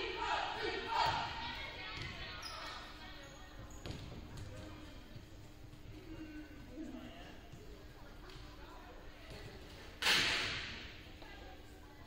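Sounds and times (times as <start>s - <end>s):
faint background chatter: 0.0s - 12.0s
ball bouncing on wooden floor: 3.8s - 4.7s.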